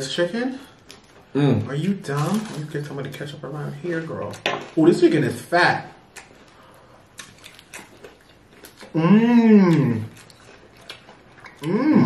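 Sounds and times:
quiet chewing: 0:06.1 - 0:12.0.

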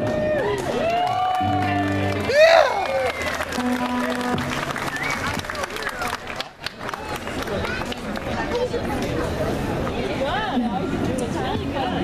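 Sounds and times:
scattered applause: 0:00.0 - 0:09.2
crowd noise: 0:00.0 - 0:12.0
live band with saxophones: 0:01.4 - 0:05.8.

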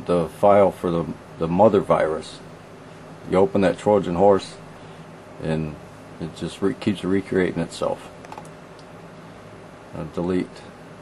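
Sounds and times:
low background hum: 0:00.0 - 0:11.0
computer keys or mouse clicks: 0:08.2 - 0:08.5.

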